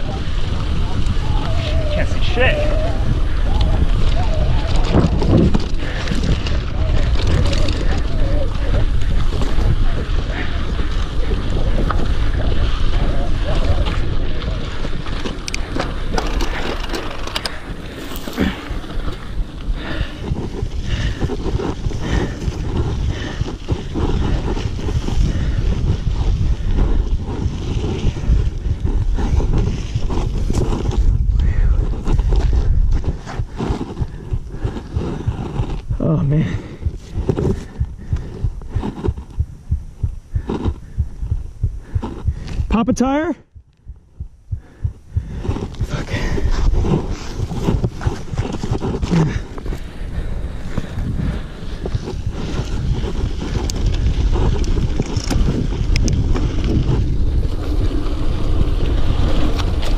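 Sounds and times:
bike clicks and rattles: 0.0s - 39.4s, 45.3s - 59.9s
wind buffeting microphone: 0.0s - 59.9s.

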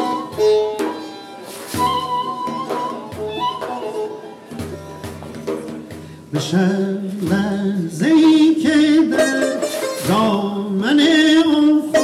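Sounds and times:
plucked lute: 0.0s - 12.0s.

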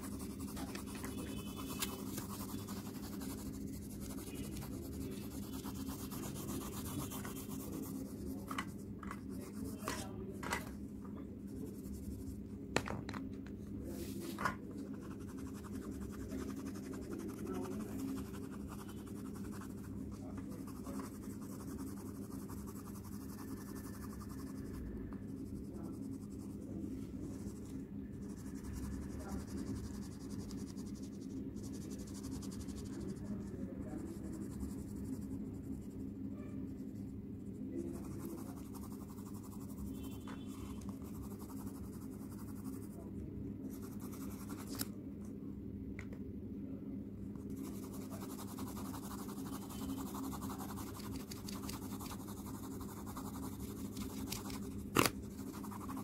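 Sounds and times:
pencil scratching on paper: 0.0s - 10.7s, 11.4s - 12.4s, 14.8s - 43.1s, 43.7s - 44.9s, 47.4s - 56.0s
steady low hum: 0.0s - 56.0s.

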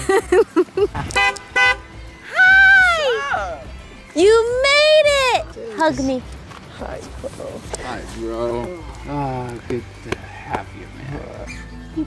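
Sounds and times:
car horn tooting: 1.0s - 2.0s.

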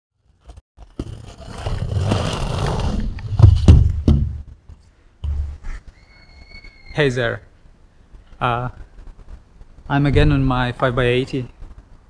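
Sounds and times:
heavy knocks on camera: 3.4s - 5.5s
wind rumbling on microphone: 8.1s - 12.0s.

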